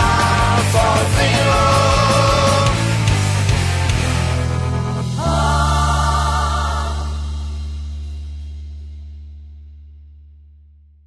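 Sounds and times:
rock band closing chord: 0.0 - 8.3.

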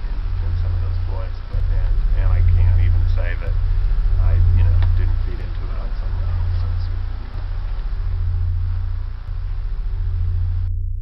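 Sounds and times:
deep droning hum: 0.0 - 11.0.

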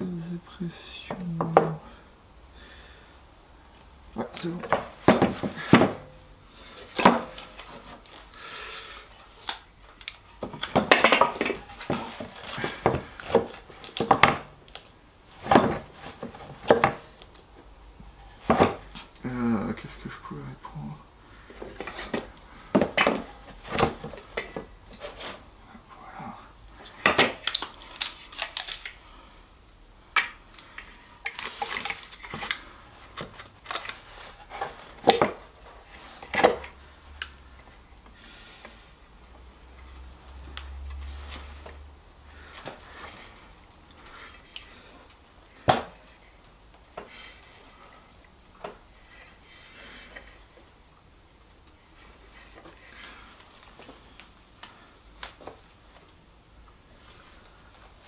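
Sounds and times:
wood and metal clatter on workbench: 4.6 - 6.1, 6.8 - 8.0, 10.4 - 14.5, 15.4 - 17.1, 18.4 - 19.0, 21.6 - 25.4, 34.4 - 36.8.

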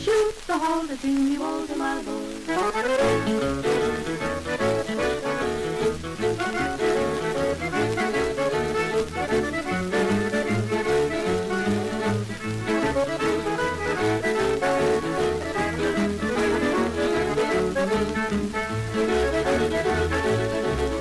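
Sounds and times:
record crackle: 0.0 - 21.0
boogie-woogie band playing: 1.7 - 21.0.

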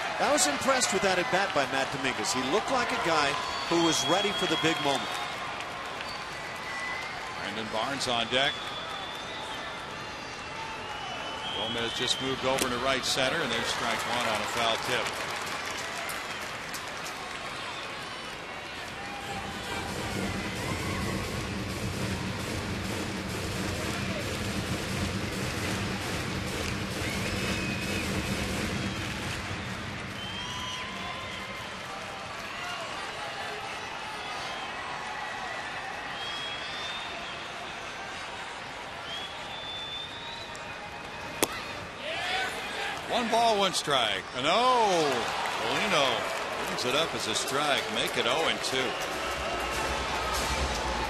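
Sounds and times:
crowd shouts: 0.0 - 6.0, 17.2 - 21.5, 30.1 - 51.0.

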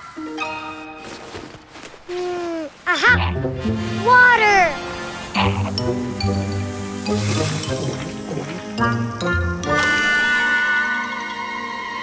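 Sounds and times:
light background music: 0.0 - 2.1, 2.9 - 12.0.

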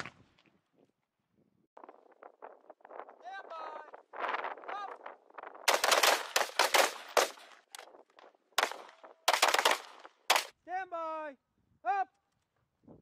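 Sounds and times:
rifle shots: 5.7 - 7.7, 8.6 - 10.5.

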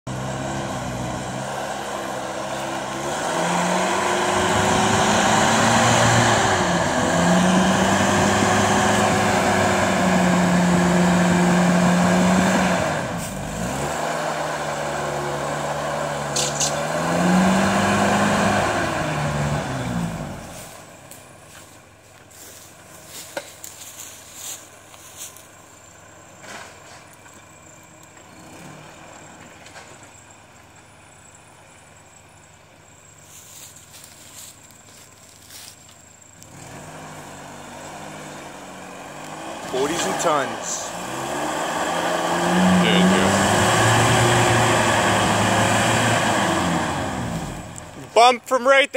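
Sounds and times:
engine revving under load: 0.1 - 21.2, 27.6 - 30.2, 36.4 - 48.1.

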